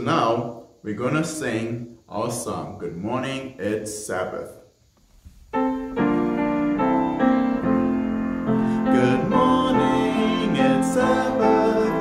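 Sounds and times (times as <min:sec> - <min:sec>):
piano playing: 0:05.5 - 0:12.0.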